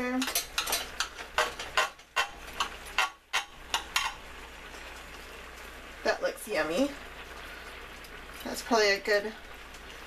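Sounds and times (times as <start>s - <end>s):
cutlery clicking on glass dish: 0.2s - 4.2s.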